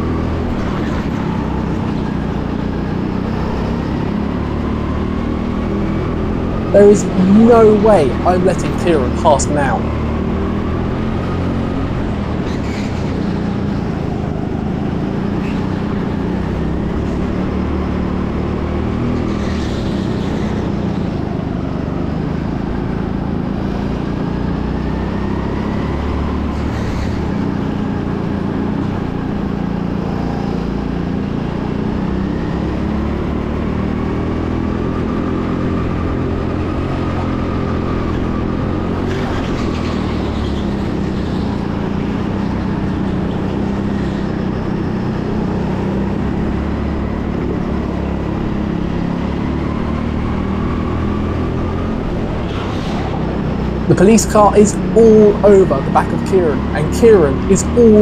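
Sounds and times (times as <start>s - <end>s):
go-kart engine at racing speed: 0.0s - 58.0s.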